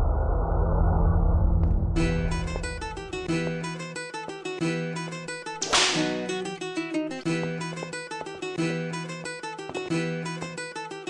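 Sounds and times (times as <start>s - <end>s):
plucked-string riff: 2.0s - 11.0s
sharp noisy swish: 5.6s - 6.3s.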